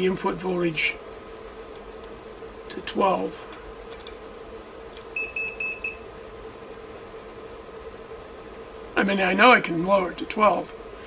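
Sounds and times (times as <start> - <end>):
faint electrical hum: 0.0 - 11.0.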